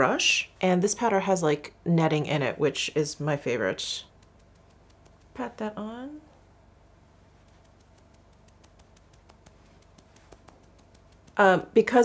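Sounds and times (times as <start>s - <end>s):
low hum: 3.2s - 11.8s
faint rapid ticking: 4.0s - 5.6s, 7.4s - 11.8s.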